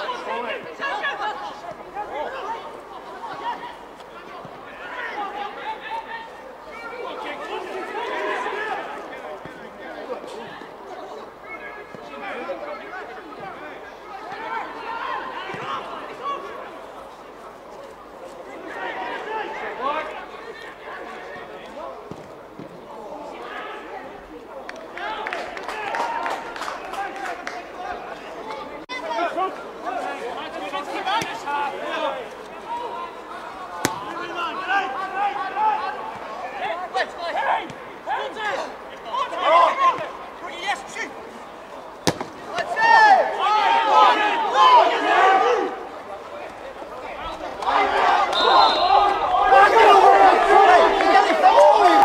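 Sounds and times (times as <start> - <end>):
players shouting and calling: 0.0 - 52.0.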